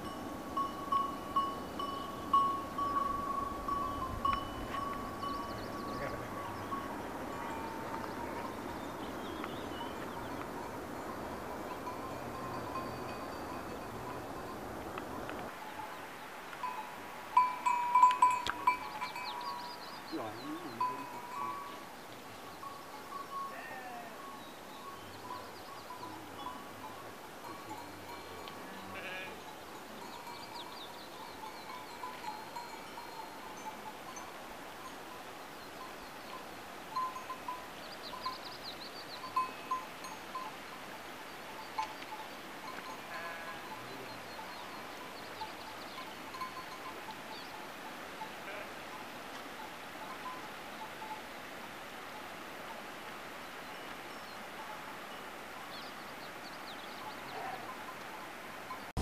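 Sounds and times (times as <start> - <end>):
sheep bells ringing: 0.0 - 16.0, 16.6 - 51.3, 56.6 - 59.0
steady background hiss: 0.0 - 59.0
sheep bleating: 23.5 - 24.2, 28.6 - 29.4, 43.0 - 44.0, 48.4 - 48.8.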